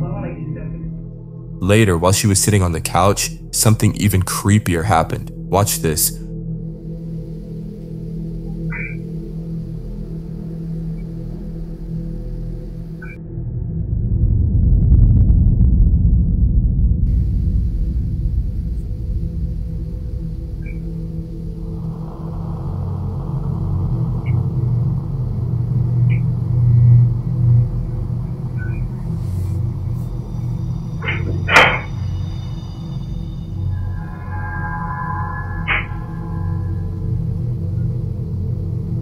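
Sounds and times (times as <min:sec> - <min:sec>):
eerie rumbling music drone: 0:00.0 - 0:39.0
sudden sharp sound: 0:28.8 - 0:37.2.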